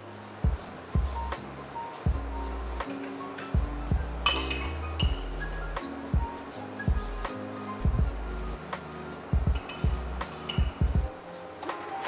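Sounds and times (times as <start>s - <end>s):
background music with steady beat: 0.0s - 12.0s
metal spoon clinking cup: 4.3s - 5.2s, 9.6s - 10.8s.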